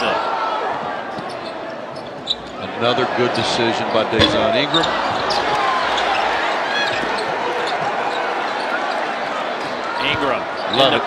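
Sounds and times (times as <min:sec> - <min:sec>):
crowd din: 0:00.0 - 0:11.0
sneaker squeaks: 0:00.9 - 0:02.7, 0:03.8 - 0:11.0.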